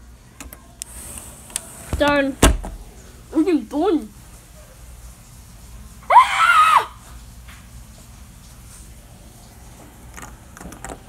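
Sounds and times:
short high-pitched scream: 6.1s - 7.0s.

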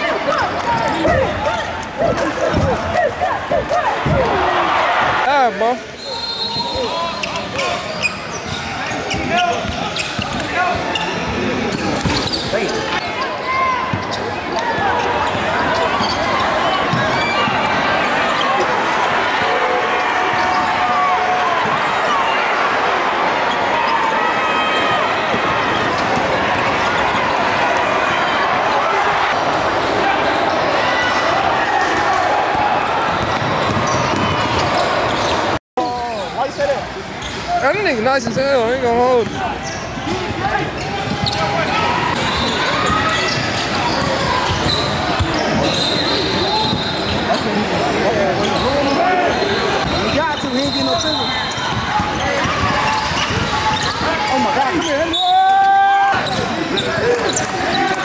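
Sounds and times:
crowd and player voices echoing: 0.0s - 58.0s.

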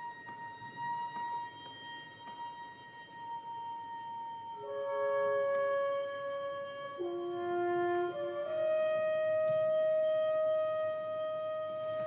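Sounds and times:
sustained wind instrument note: 0.0s - 12.0s.

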